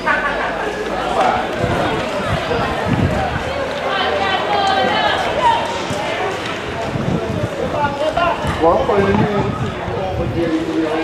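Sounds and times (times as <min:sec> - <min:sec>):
people calling out: 0:00.0 - 0:11.0.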